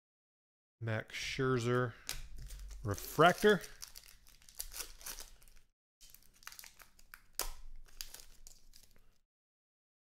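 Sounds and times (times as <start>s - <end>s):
foil wrappers crinkling: 2.1s - 9.2s.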